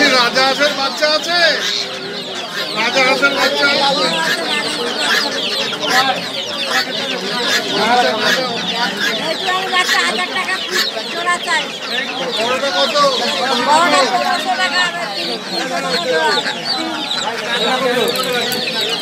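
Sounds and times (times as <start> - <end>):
chickens clucking: 0.0 - 19.0
chicks peeping: 0.0 - 19.0.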